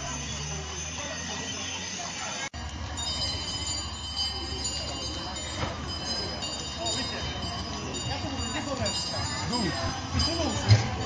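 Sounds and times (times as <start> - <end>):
people talking: 0.0 - 11.0
tractor engine running: 0.0 - 11.0.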